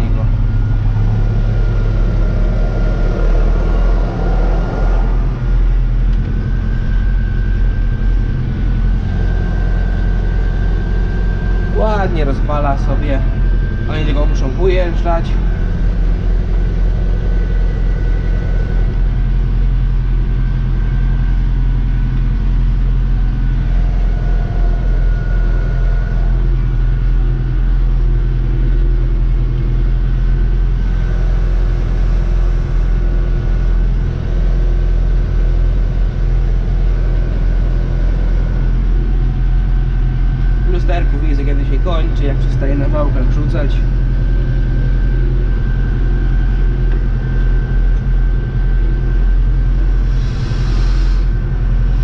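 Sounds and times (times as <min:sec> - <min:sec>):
high conveyor whine: 0:00.0 - 0:52.0
tractor engine drone: 0:00.0 - 0:52.0.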